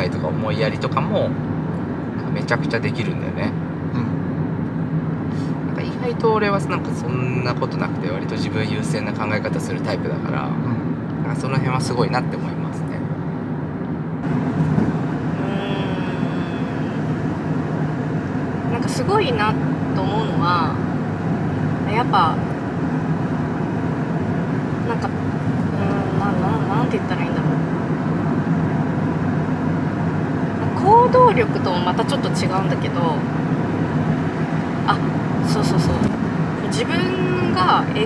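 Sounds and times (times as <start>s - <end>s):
car road and engine noise: 0.0s - 38.0s.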